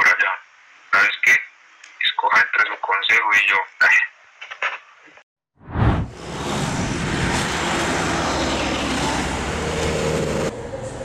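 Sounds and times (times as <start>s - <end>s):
traffic noise: 5.9s - 11.0s
minibus engine running: 6.1s - 11.0s.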